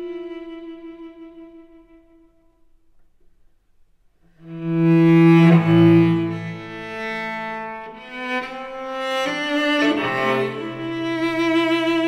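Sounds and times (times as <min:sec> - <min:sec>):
cello bowed slowly: 0:00.0 - 0:02.5, 0:04.4 - 0:12.0.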